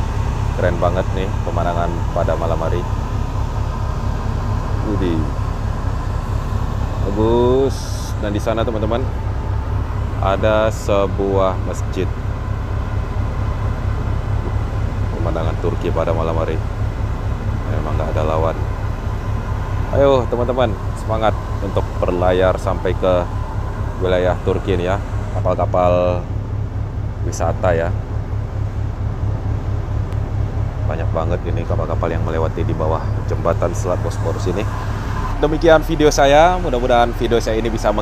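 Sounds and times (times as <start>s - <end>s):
ship engine rumbling: 0.0s - 38.0s.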